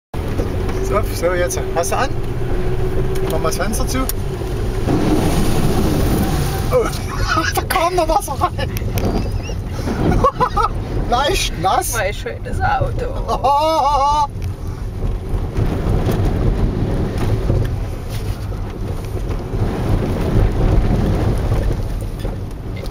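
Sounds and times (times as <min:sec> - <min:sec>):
car engine and tyres rumbling: 0:00.1 - 0:22.9
water spraying over car: 0:00.2 - 0:22.9.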